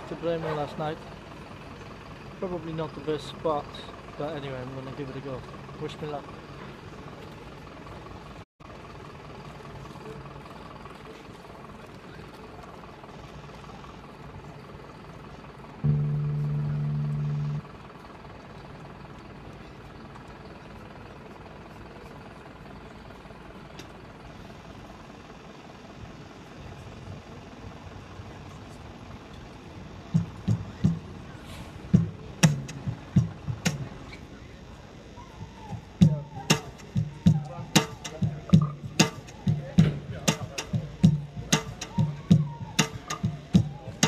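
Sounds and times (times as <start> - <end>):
street traffic: 0.0 - 44.0
loud low buzzing tone: 15.8 - 17.8, 30.0 - 34.5.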